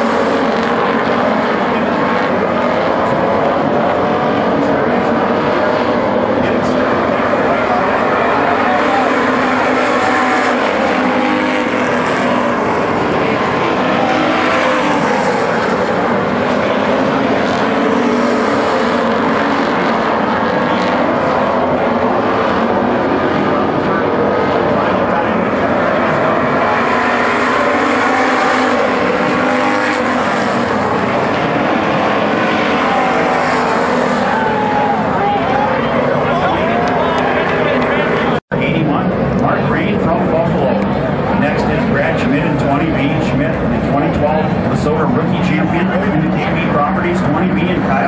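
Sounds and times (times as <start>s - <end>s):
race car engines passing: 0.0s - 48.0s.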